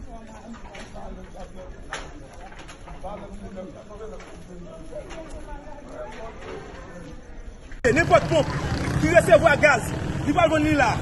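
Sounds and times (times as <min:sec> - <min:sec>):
indistinct street voices: 0:00.0 - 0:11.0.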